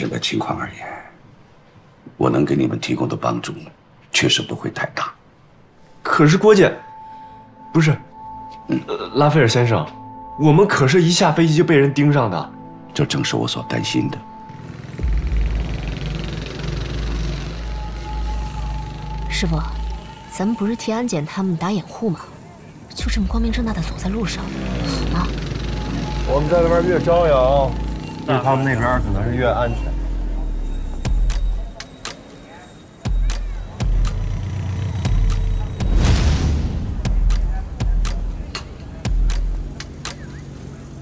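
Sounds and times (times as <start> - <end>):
city street ambience: 0.0 - 41.0
vehicle engine rumbling: 14.6 - 21.0, 21.8 - 41.0.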